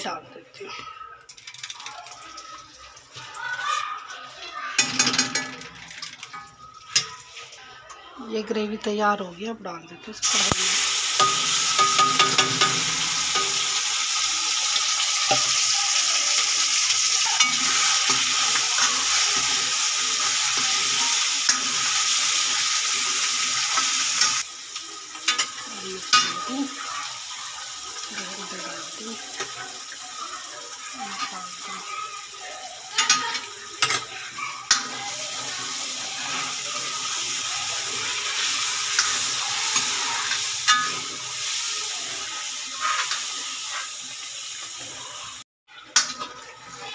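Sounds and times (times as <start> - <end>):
paste sizzling in hot oil: 10.2 - 46.9.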